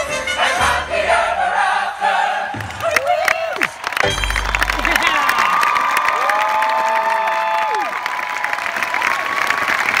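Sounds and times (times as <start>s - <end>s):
audience applauding: 2.6s - 10.0s
crowd cheering and whooping: 2.7s - 10.0s.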